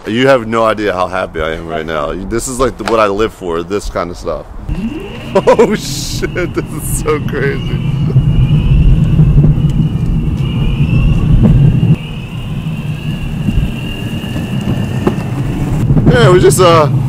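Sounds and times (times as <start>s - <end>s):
wheels rumbling on asphalt: 4.6s - 17.0s
high electric motor whine: 4.7s - 8.2s.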